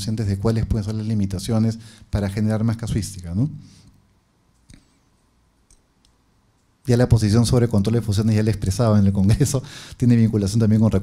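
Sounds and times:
man talking into a microphone: 0.0 - 3.6, 6.8 - 11.0
faint small clicks: 5.6 - 6.8.

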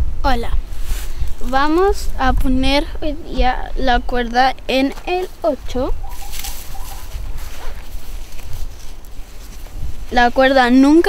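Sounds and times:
wind rumble on microphone: 0.0 - 11.0
leaf litter rustling: 0.6 - 2.1, 4.9 - 11.0
climbing rope rustling: 0.6 - 2.2, 4.8 - 11.0.

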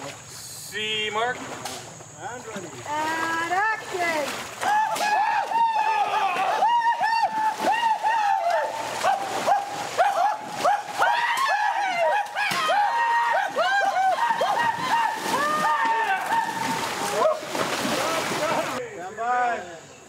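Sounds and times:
feet splashing through water: 1.2 - 18.8
men yelling war cries: 4.6 - 19.8.

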